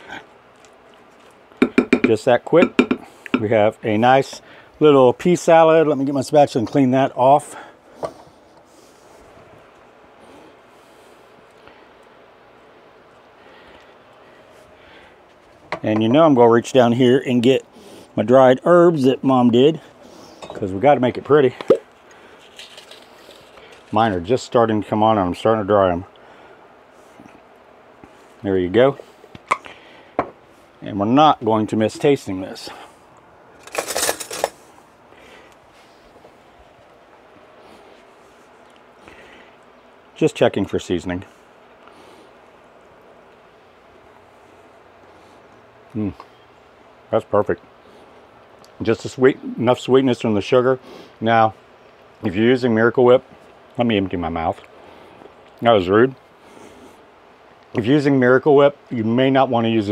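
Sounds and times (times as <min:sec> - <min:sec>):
metal utensils clinking: 0:33.6 - 0:34.6.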